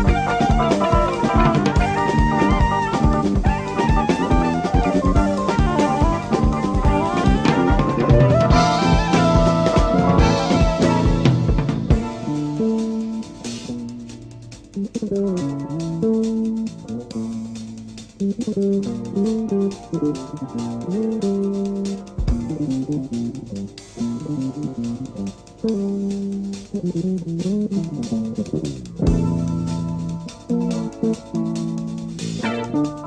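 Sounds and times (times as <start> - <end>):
bass and drums: 0.0 - 33.0
electric guitar melody: 0.0 - 33.0.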